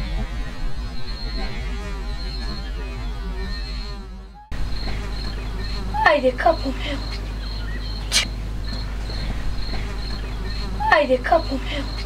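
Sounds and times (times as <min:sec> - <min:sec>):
insect chirring: 0:06.8 - 0:12.0.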